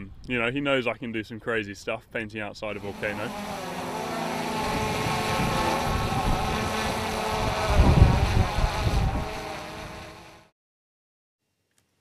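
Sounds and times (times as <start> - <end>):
wind buffeting microphone: 2.9 - 10.2.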